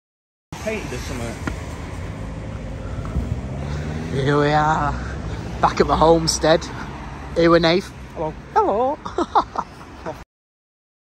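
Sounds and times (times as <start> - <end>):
road traffic rumble: 0.5 - 10.2
car engine hum: 0.6 - 10.2.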